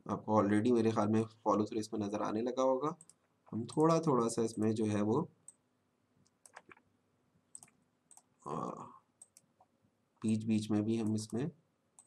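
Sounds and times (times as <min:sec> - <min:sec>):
mouse and keyboard clicks: 0:06.3 - 0:06.8, 0:07.5 - 0:08.3.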